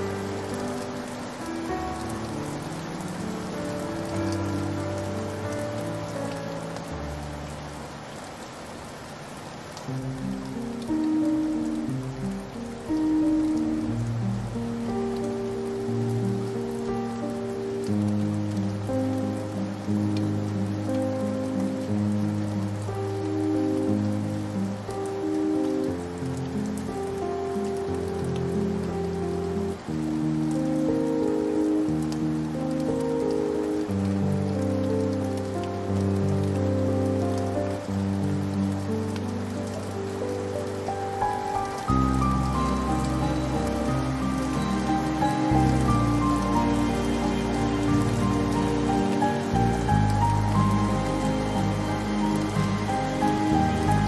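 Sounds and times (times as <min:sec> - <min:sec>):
slow sad piano music: 0:00.0 - 0:54.0
steady rain: 0:00.0 - 0:54.0.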